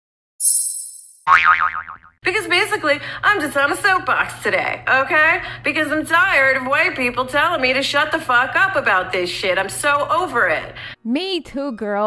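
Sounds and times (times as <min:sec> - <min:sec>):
wobbling twangy tone: 0:01.3 - 0:02.2.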